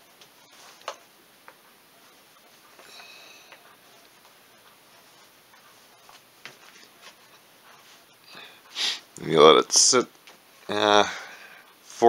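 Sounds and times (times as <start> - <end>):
soft brushing strokes: 0.0 - 1.0, 1.6 - 10.7.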